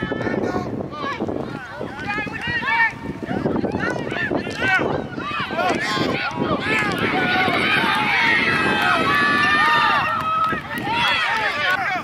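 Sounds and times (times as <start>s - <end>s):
spectators yelling and cheering: 0.0s - 12.0s.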